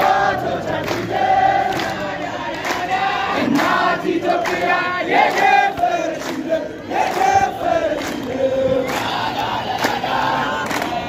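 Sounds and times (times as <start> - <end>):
crowd singing in unison: 0.0 - 11.0.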